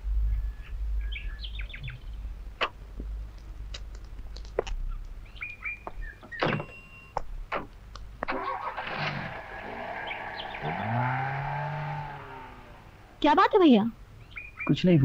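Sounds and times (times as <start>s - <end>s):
birds chirping: 0.1s - 15.0s
car engine running and revving: 8.7s - 13.2s.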